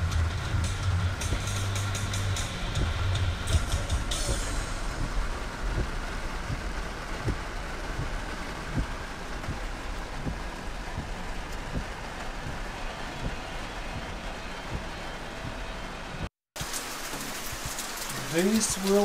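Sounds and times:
low engine hum: 0.0s - 16.3s
car cabin and road noise: 0.0s - 19.0s
rain on car windshield and roof: 0.0s - 19.0s.

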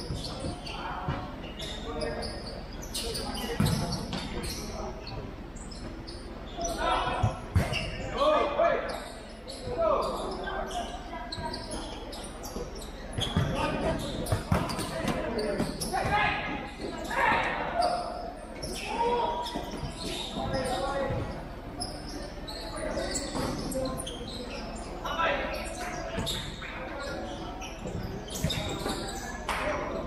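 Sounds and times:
ball kicked and bouncing: 14.3s - 15.3s.

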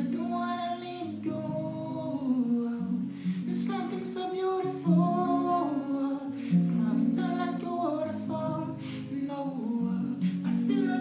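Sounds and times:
acoustic guitar strumming: 0.0s - 11.0s
man singing wordless melody: 0.0s - 11.0s.

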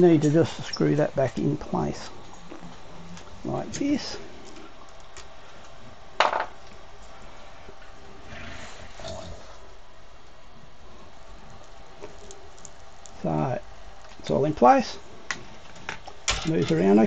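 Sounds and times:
room noise: 0.0s - 17.0s.

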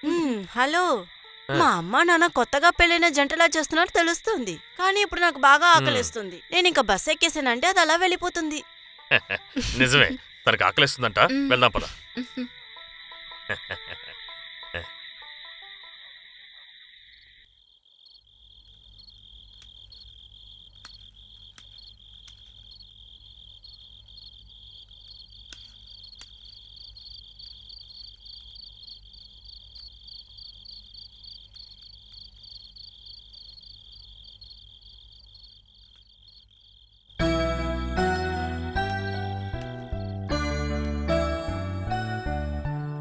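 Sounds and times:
crickets trilling: 0.0s - 37.4s, 38.0s - 40.4s
music with chiming notes: 37.2s - 43.0s.

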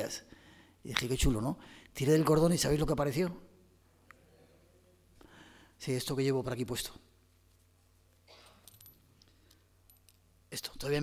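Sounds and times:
small necklace clicks: 8.4s - 10.3s.

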